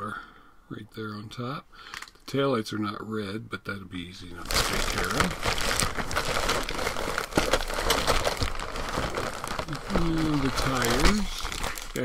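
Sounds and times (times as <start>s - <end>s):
plastic bag crinkling: 4.2s - 12.0s.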